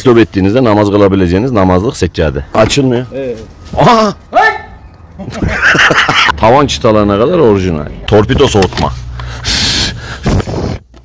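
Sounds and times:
man laughing breathily: 0:09.3 - 0:10.8.

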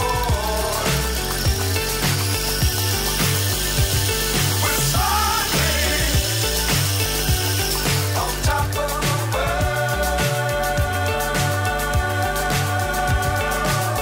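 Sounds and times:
pop song with steady beat: 0:00.0 - 0:14.0
small motor high whine: 0:00.0 - 0:14.0.

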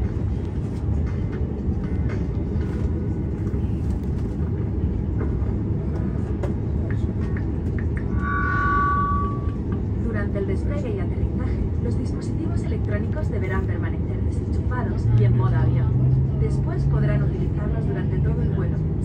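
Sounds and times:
aircraft cabin rumble: 0:00.0 - 0:19.0
two-tone chime: 0:08.1 - 0:09.6.

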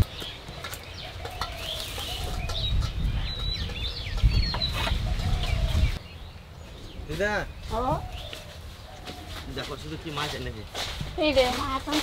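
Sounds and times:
small birds chirping: 0:00.0 - 0:12.0
chickens clucking: 0:00.6 - 0:06.0.

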